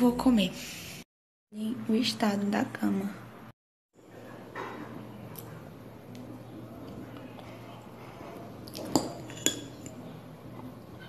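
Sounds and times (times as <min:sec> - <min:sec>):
metal fork clinking on dish: 0:08.9 - 0:10.0.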